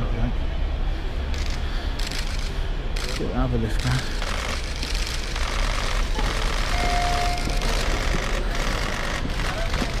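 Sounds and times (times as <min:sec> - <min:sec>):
terminal concourse noise: 0:00.0 - 0:10.0
electronic beep: 0:06.7 - 0:07.6.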